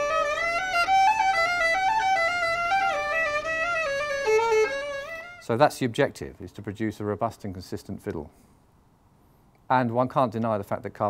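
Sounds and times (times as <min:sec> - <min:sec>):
violin slow melody: 0:00.0 - 0:05.5.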